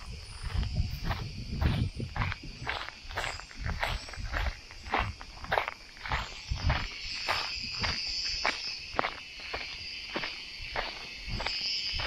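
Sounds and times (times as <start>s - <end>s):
footsteps crunching on dry trail: 0.0s - 12.0s
insects droning: 0.0s - 12.0s.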